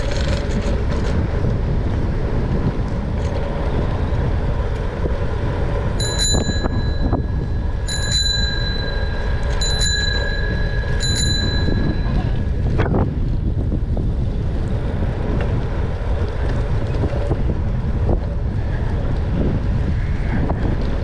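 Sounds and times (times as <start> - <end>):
low rumble of wind and riding: 0.0 - 21.0
bicycle bell ringing: 6.0 - 12.7.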